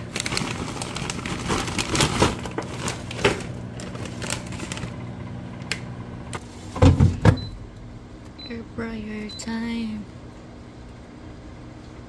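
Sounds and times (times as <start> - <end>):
steady low hum: 0.0 - 12.0
basket clunks: 6.8 - 7.5.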